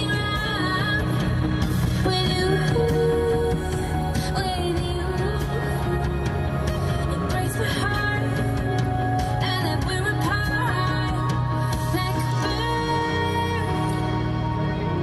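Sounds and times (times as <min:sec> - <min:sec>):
music on a radio: 0:00.0 - 0:15.0.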